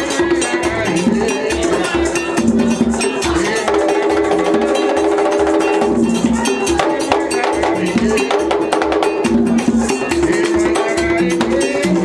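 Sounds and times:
group singing a chant: 0.0 - 12.0
hand drums beaten fast: 0.0 - 12.0.

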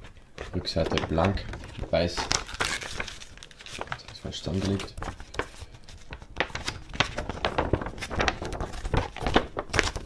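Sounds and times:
paper poster rustling: 0.4 - 10.0.

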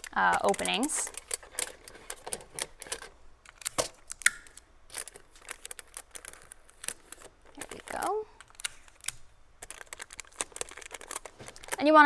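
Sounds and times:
foil crinkling: 0.0 - 4.2, 4.9 - 12.0.

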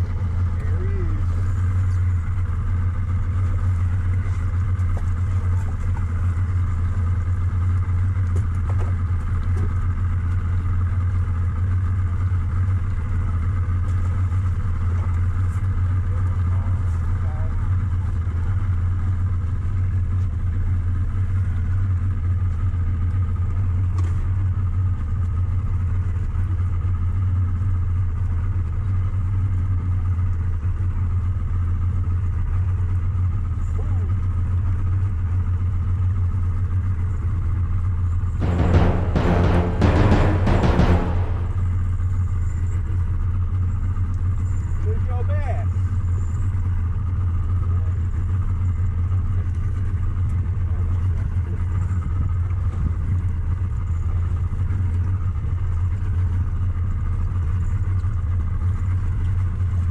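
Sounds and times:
outboard motor idling: 0.0 - 38.2, 42.9 - 59.9.

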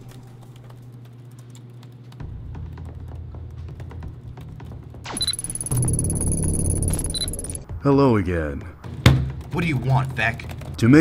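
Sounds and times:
fast typing on laptop keyboards: 0.0 - 3.8.

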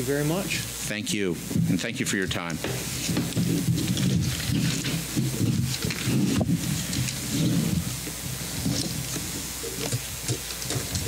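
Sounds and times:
steady hiss and hum: 0.0 - 11.0
papers being handled: 1.5 - 11.0.

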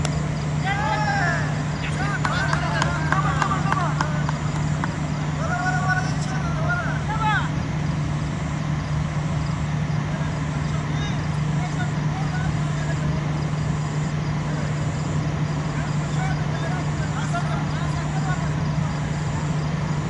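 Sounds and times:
steady low hum: 0.0 - 20.0
players calling out: 0.4 - 20.0.

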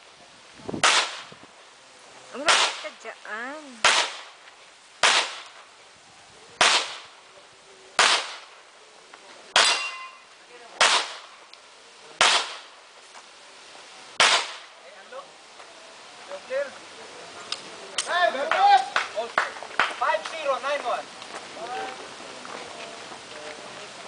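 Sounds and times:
handgun shots with echo: 8.0 - 8.4, 9.6 - 10.1, 14.2 - 14.6.

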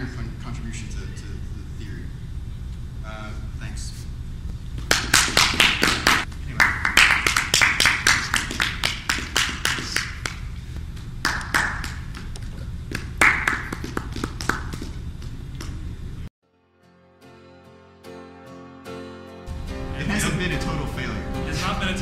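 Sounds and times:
audience applauding: 4.8 - 10.5, 11.2 - 12.4, 13.0 - 14.9.

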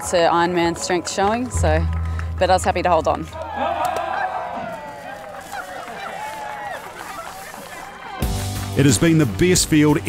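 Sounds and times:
people whooping and shrieking: 3.3 - 8.4.

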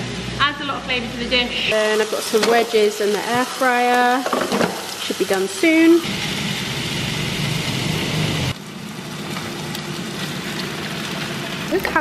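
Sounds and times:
air fryer fan running: 0.0 - 12.0
chicken frying in a pan: 1.7 - 12.0.

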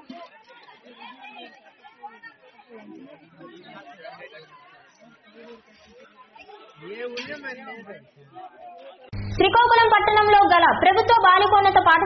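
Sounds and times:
chatter of overlapping voices: 0.0 - 12.0.

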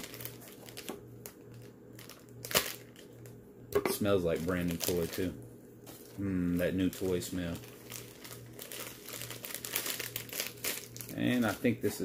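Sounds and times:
plastic bag crinkling: 0.0 - 3.2, 4.1 - 12.0.

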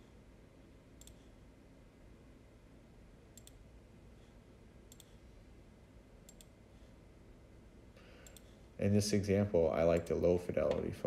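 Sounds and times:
faint low room hum: 0.0 - 11.0
computer mouse clicking: 1.0 - 1.4, 3.3 - 3.6, 4.9 - 5.2, 6.2 - 6.6, 8.2 - 8.6.

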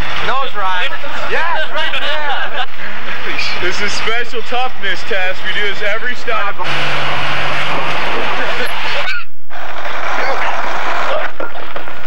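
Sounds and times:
people talking: 0.0 - 6.9, 7.5 - 9.3, 10.0 - 12.0
low hum: 0.0 - 12.0.

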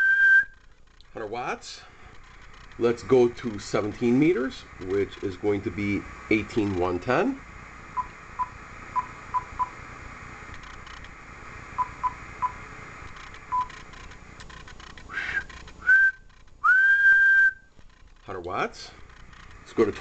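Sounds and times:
person whistling into microphone: 0.0 - 0.6, 15.1 - 17.7.

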